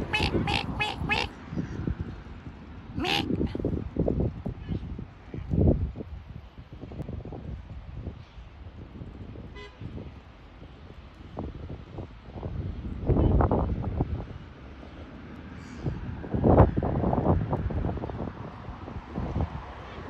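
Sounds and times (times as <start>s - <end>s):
thin pitched call: 0.0s - 1.3s
wind buffeting microphone: 0.0s - 14.4s, 15.8s - 20.0s.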